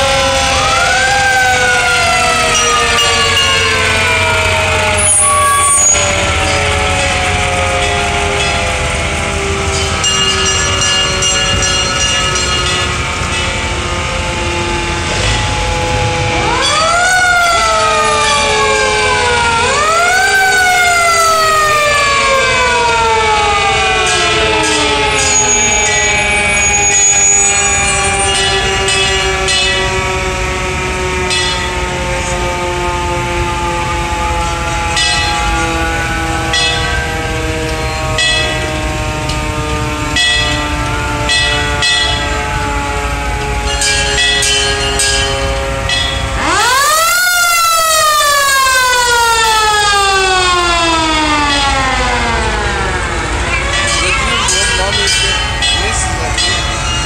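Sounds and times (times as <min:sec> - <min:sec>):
fire truck sirens wailing: 0:00.0 - 0:57.0.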